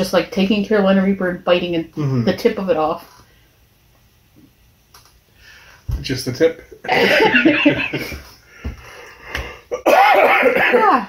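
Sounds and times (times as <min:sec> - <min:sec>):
person laughing: 0:06.8 - 0:08.2
person coughing: 0:09.7 - 0:11.0.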